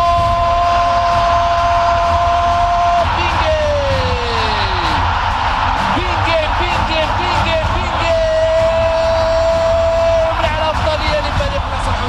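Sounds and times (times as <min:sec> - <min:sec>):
noisy crowd: 0:00.0 - 0:12.0.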